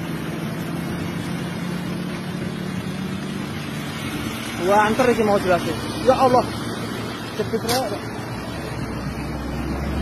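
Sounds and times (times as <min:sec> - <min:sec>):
road noise: 0:00.0 - 0:10.0
vehicle engine hum: 0:00.0 - 0:10.0.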